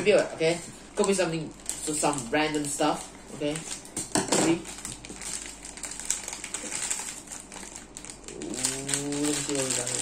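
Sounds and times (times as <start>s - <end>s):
foil bag crinkling: 0.0s - 10.0s
person humming: 8.3s - 9.8s.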